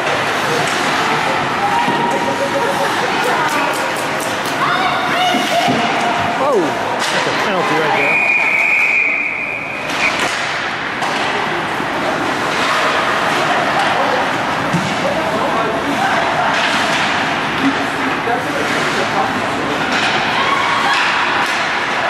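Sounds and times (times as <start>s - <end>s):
spectators' voices: 0.0s - 22.0s
referee's whistle blowing: 8.0s - 9.8s.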